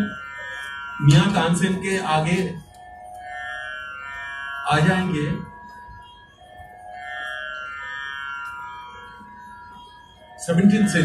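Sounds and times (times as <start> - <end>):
musical drone of held notes: 0.0 - 11.0.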